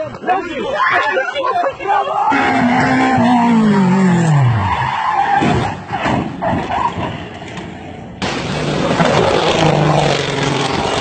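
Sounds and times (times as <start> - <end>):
rally car passing at speed: 8.2 - 11.0.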